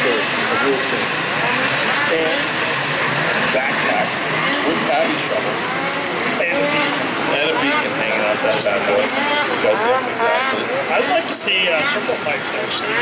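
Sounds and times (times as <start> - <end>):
snowmobile engines running: 0.0 - 13.0.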